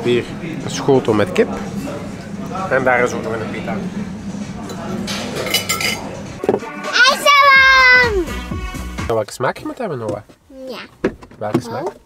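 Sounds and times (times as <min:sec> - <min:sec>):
restaurant room noise: 0:00.0 - 0:09.2
cutlery and crockery clinking: 0:04.7 - 0:06.1.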